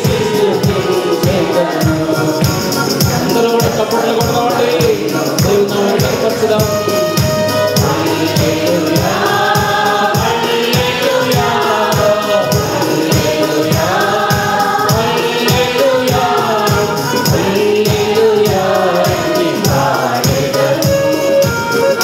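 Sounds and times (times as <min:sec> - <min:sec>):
electronic keyboard: 0:00.0 - 0:22.0
mixed choir singing: 0:00.0 - 0:22.0
steady percussion beat: 0:00.0 - 0:22.0.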